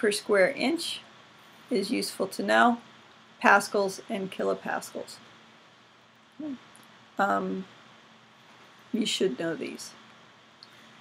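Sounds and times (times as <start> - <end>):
faint room hiss: 0.0 - 11.0
low hum-like voice sound: 6.3 - 7.8.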